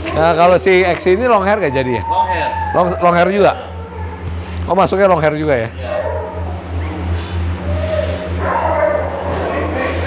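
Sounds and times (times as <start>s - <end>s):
dog whining: 1.6s - 4.5s, 5.8s - 10.0s.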